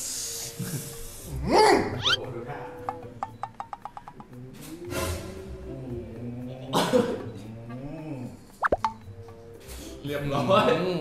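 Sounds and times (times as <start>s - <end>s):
quiet background music: 0.0s - 11.0s
water-drop plop effects: 8.6s - 9.0s.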